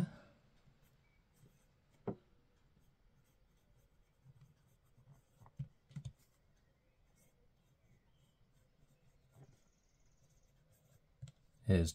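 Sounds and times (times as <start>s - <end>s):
fountain pen scratching on paper: 0.8s - 6.4s, 7.0s - 11.6s.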